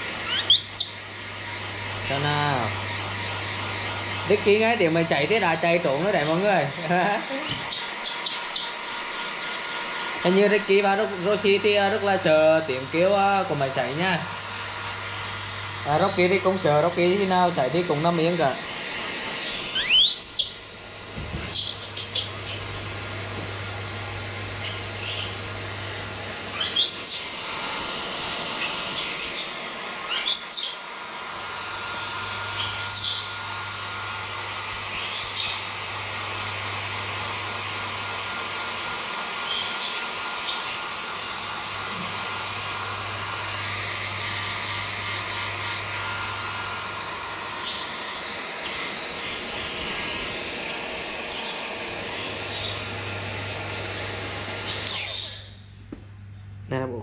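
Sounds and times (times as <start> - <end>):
hair dryer humming: 0.0 - 56.6.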